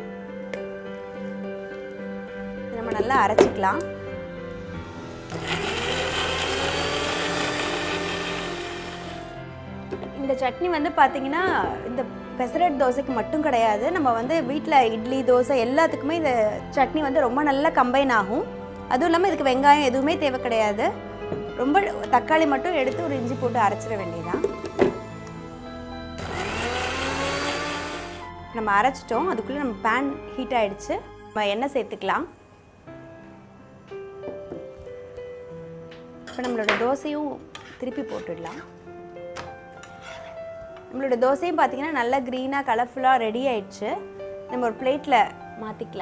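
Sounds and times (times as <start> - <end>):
electric mixer grinder running: 5.3 - 9.4, 26.2 - 28.2.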